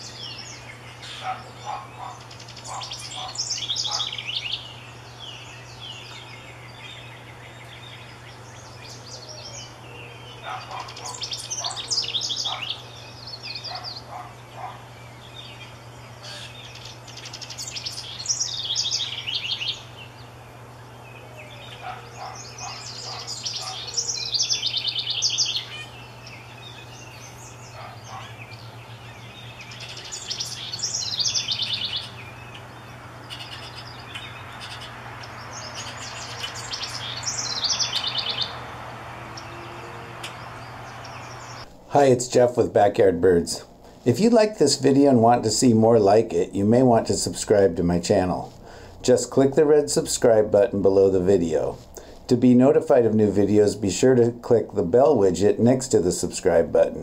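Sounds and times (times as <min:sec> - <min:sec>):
wren singing trilled song: 0:00.0 - 0:41.7.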